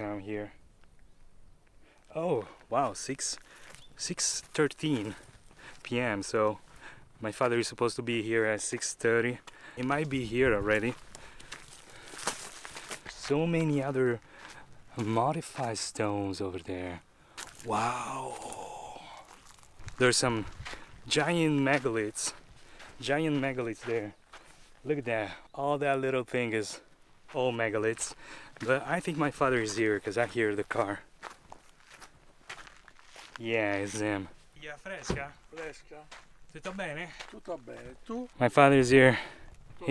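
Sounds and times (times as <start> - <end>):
footsteps on gravel: 2.0 - 6.8, 8.7 - 15.8, 17.3 - 25.4, 26.6 - 38.5.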